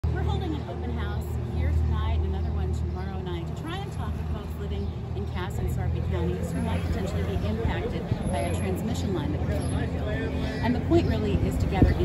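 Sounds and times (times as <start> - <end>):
low vehicle rumble: 0.0 - 12.0
woman speaking: 0.0 - 12.0.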